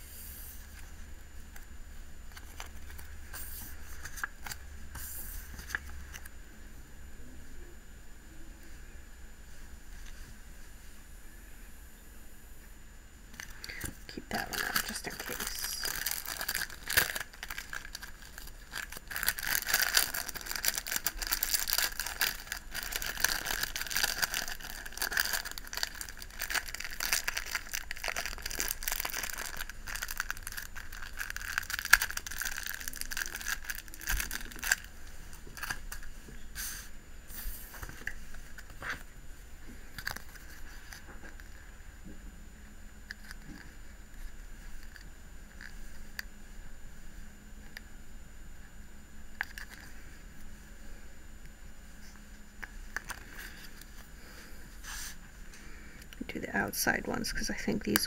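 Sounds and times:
plastic sheets crinkling: 13.4s - 36.1s.

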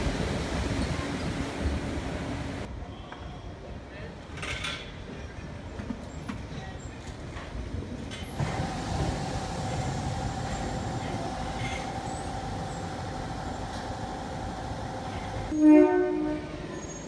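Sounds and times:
monorail train rumble: 0.0s - 2.8s, 5.0s - 17.0s.

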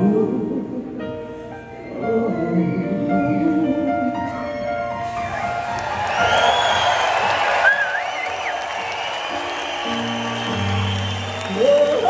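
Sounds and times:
wordless female vocal: 0.0s - 1.0s
crowd cheering: 5.2s - 12.0s.

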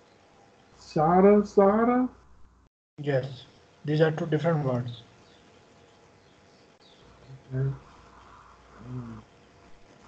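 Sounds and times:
faint line hiss: 0.0s - 10.0s
person humming briefly: 8.8s - 9.2s.

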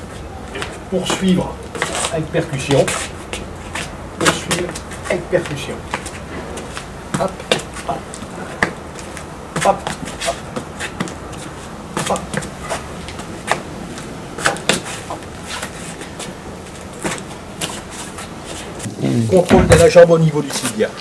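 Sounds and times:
shoes shuffling on stone: 0.0s - 20.8s.

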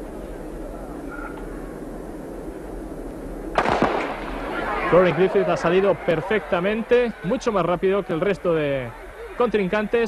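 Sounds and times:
low background murmur: 0.0s - 10.0s
starter's pistol shot: 3.6s - 4.4s.

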